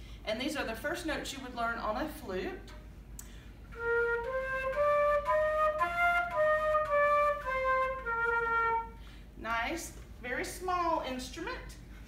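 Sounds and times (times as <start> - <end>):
flute playing a scale: 3.7 - 9.0.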